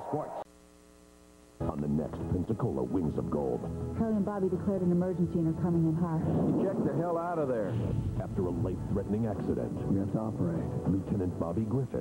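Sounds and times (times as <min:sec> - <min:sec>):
faint mains hum: 0:00.0 - 0:12.0
promo music: 0:01.6 - 0:12.0.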